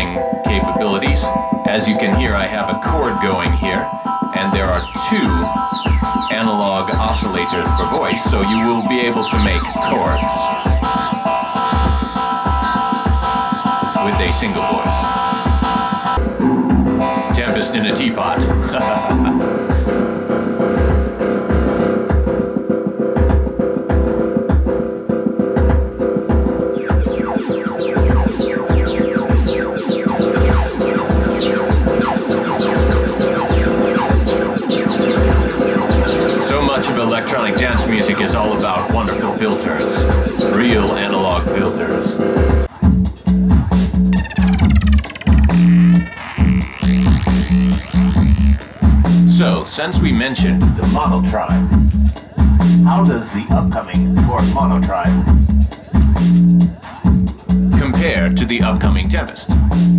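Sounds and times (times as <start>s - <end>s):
repeating synth bass pattern: 0.0s - 41.0s, 43.7s - 49.5s
kick drum beat: 20.8s - 27.4s, 51.7s - 53.0s, 55.3s - 58.1s
synth filter sweep: 26.1s - 38.6s, 44.0s - 49.4s.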